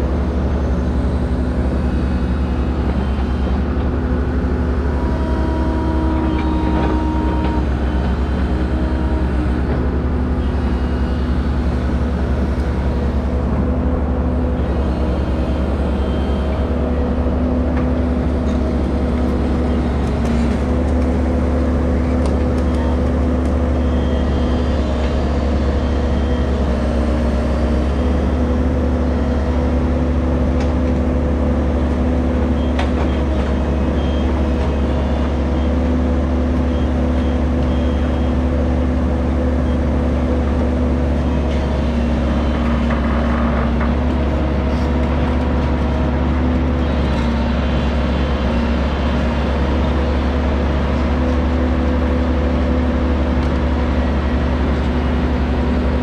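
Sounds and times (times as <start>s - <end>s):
excavator diesel engine: 0.0s - 56.0s.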